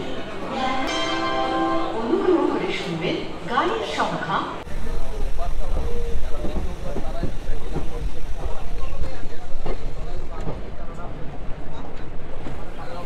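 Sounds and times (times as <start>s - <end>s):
passenger train rumbling: 0.0s - 13.0s.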